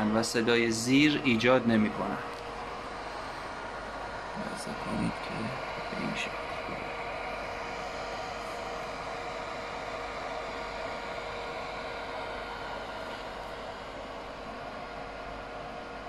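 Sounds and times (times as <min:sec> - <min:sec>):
cooling fans whooshing: 0:00.0 - 0:16.0
faint steady tones: 0:00.0 - 0:16.0.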